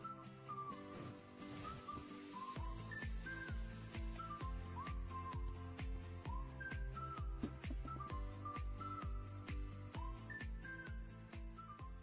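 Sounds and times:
bass: 0:00.0 - 0:12.0
whistle-like melody: 0:00.0 - 0:12.0
kick-drum beat: 0:02.6 - 0:12.0.

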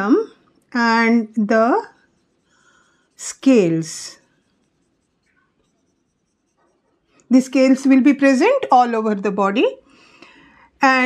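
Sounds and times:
marker strokes on whiteboard: 0:00.8 - 0:08.7.

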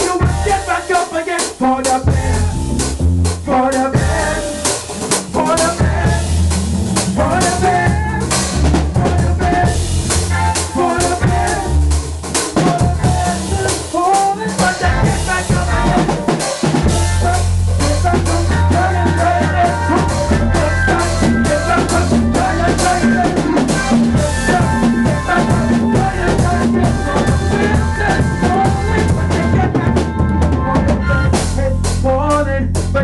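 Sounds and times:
drum kit rimshots: 0:00.0 - 0:33.0
live band playing: 0:00.0 - 0:33.0.

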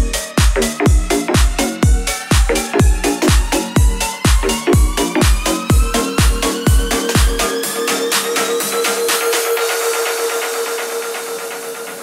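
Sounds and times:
held synth tone with pulse: 0:00.0 - 0:12.0.

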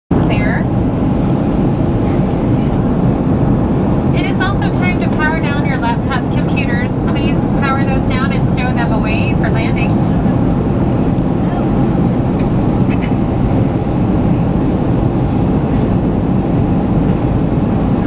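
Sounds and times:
air rushing past fuselage: 0:00.1 - 0:18.0
jet engines roaring: 0:00.1 - 0:18.0.

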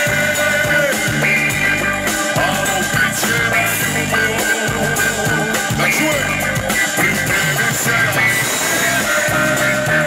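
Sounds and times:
drums: 0:00.0 - 0:10.0
guitar: 0:00.0 - 0:10.0
keyboards: 0:00.0 - 0:10.0
repeating bass line: 0:00.0 - 0:10.0.

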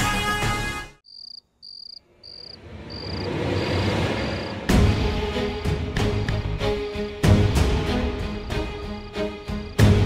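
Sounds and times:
theme music: 0:00.0 - 0:01.0, 0:02.1 - 0:10.0
crickets chirping: 0:01.0 - 0:04.7, 0:08.5 - 0:10.0.

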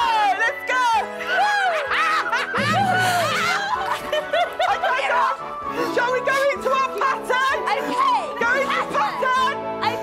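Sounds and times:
background music: 0:00.0 - 0:10.0
people laughing: 0:01.4 - 0:05.6.

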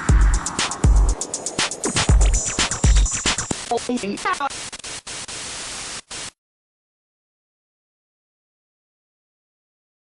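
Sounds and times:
static hiss: 0:00.0 - 0:06.4.

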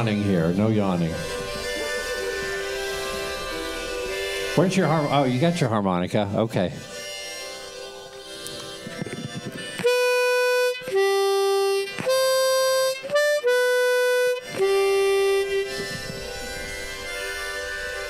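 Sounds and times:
harmonica playing: 0:00.0 - 0:18.0.

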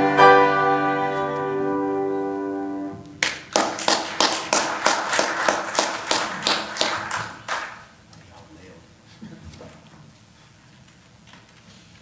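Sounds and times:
hands clapping: 0:03.2 - 0:07.9.

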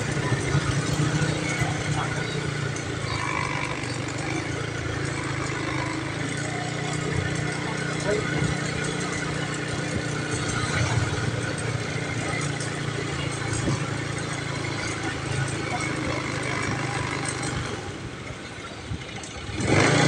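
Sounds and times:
people's voices: 0:00.0 - 0:19.3
motorcycle engine running: 0:00.0 - 0:20.0.

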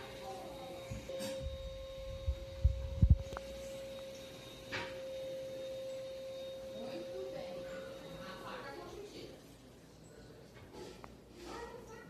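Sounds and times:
steady single-pitched hum: 0:00.0 - 0:09.9.

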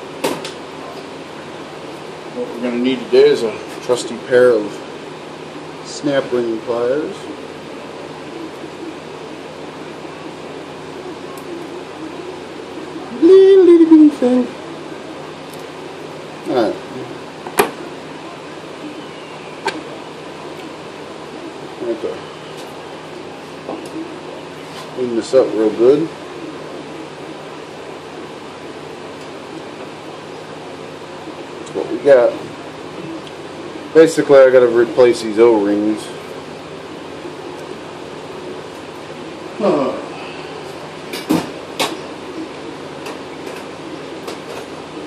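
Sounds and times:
steady low hum: 0:00.0 - 0:45.0.

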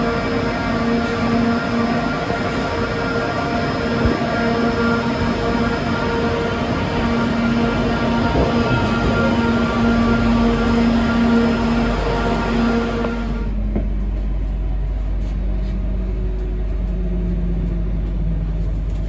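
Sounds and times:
train low rumble: 0:00.0 - 0:19.0
train motor whine rising: 0:00.0 - 0:19.0.

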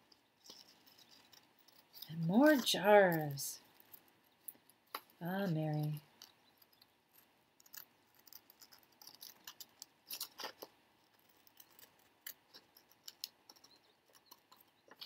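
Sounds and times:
scissors snipping paper: 0:07.6 - 0:15.0.

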